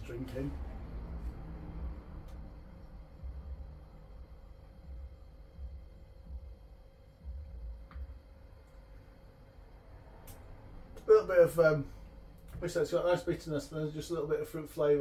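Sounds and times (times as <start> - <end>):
faint steady hum: 0.0 - 15.0
soft low thuds: 0.7 - 8.9.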